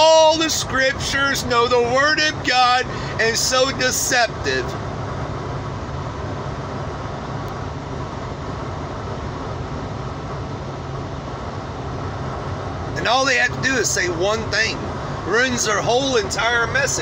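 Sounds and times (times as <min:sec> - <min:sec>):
road noise rush: 0:00.0 - 0:17.0
vehicle engine hum: 0:00.0 - 0:17.0.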